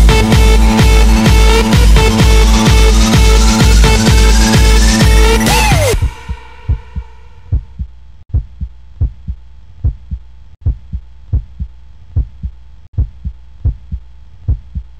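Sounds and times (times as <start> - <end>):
dance music echo: 0.0 - 7.8
heartbeat thumps: 0.0 - 14.9.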